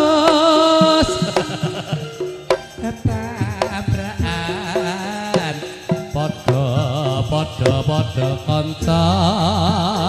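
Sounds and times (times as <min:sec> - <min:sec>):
gamelan ensemble music: 0:00.0 - 0:08.9
sharp percussive strikes: 0:00.0 - 0:10.0
wavering ornamented singing: 0:00.0 - 0:10.0.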